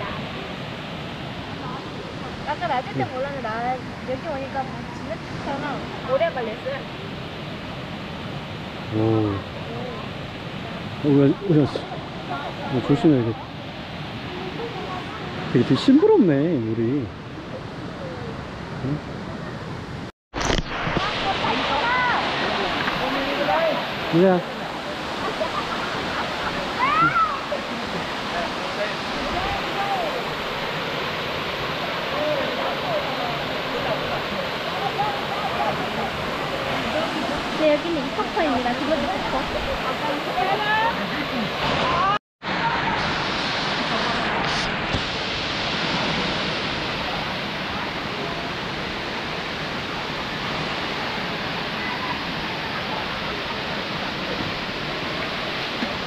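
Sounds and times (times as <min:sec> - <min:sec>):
waterfall rushing: 0:00.0 - 0:16.4, 0:20.4 - 0:56.0
waterfall pouring into pool: 0:20.4 - 0:24.4.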